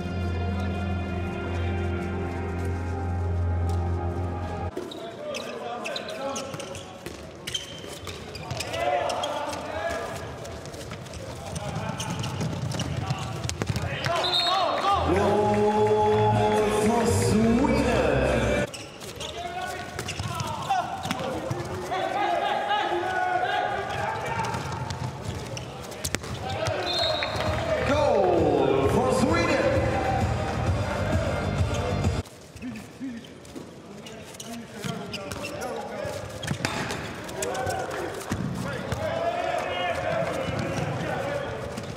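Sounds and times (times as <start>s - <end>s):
shoes squeaking: 2.4s - 14.7s, 18.6s - 22.5s, 23.8s - 27.5s, 31.6s - 39.0s
ball bouncing on court floor: 11.5s - 14.2s, 19.8s - 21.8s, 23.9s - 27.6s, 34.8s - 35.6s, 36.4s - 37.1s, 38.2s - 41.1s
ball bouncing and thumping: 11.6s - 14.2s, 24.4s - 26.8s, 38.3s - 39.1s
players calling out: 11.6s - 33.3s.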